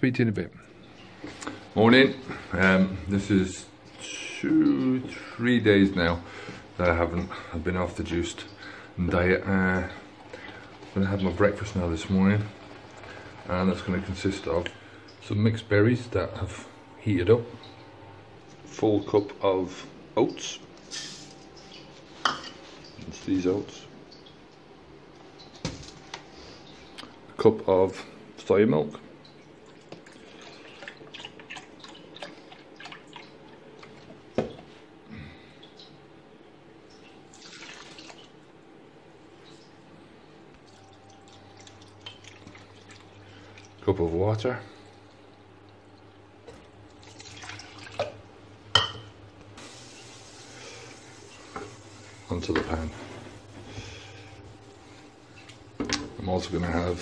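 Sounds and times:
tap water running into jug: 5.8s - 15.3s, 29.6s - 34.7s, 37.1s - 38.3s, 40.6s - 44.2s, 46.4s - 49.0s, 49.6s - 56.9s
steady hiss: 49.5s - 57.0s.

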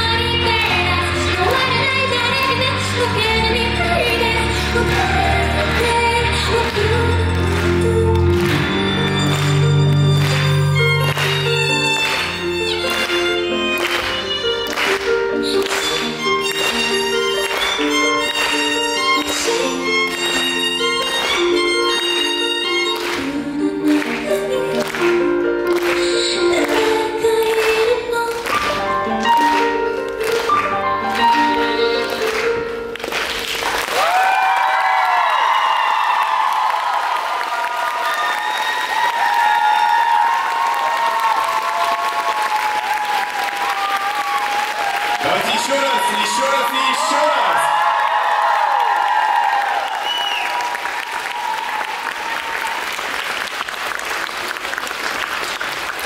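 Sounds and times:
audience applauding and cheering: 0.0s - 56.0s
live band with violin: 5.9s - 23.4s, 30.5s - 32.8s.

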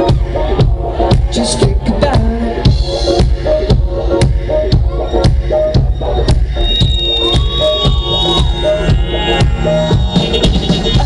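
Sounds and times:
live electronic dance-pop band: 0.0s - 11.0s
steady drum beat: 0.0s - 11.0s.

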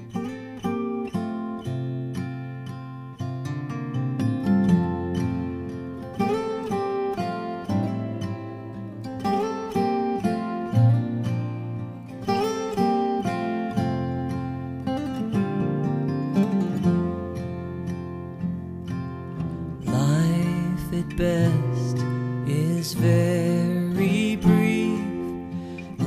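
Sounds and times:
acoustic guitar plucked notes: 0.0s - 26.0s.

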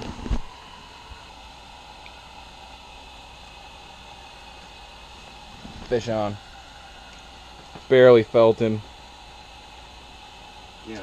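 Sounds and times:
propane heater hissing: 0.0s - 11.0s.

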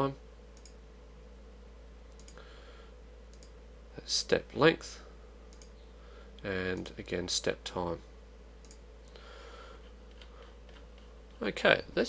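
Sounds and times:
low steady hum: 0.0s - 12.0s
computer mouse clicks: 0.6s - 0.8s, 2.1s - 2.4s, 3.3s - 3.6s, 5.5s - 5.8s, 8.6s - 9.2s.

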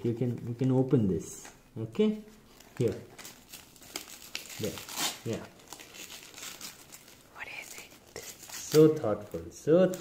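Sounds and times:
wrapping paper crinkling and tearing: 2.5s - 10.0s.

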